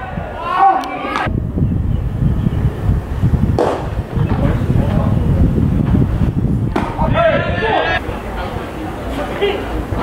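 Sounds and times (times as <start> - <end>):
wind buffeting microphone: 0.0 - 8.8
baseball smacking into mitt: 3.6 - 3.9, 6.7 - 7.0.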